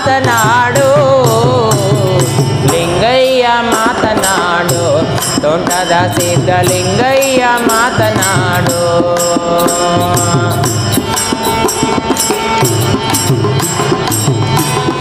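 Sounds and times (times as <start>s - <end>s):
person singing wordless melody: 0.0s - 12.4s
tabla beat: 0.0s - 15.0s.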